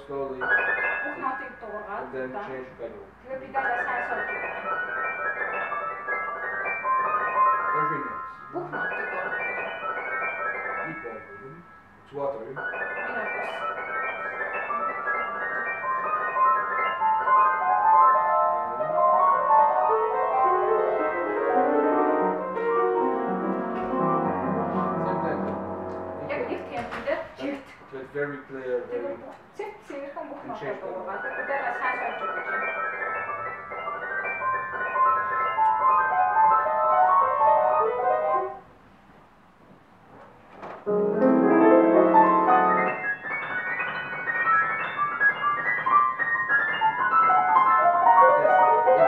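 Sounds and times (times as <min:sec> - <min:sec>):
grand piano playing: 0:00.0 - 0:02.2, 0:03.3 - 0:27.2, 0:30.5 - 0:38.7, 0:40.8 - 0:49.0.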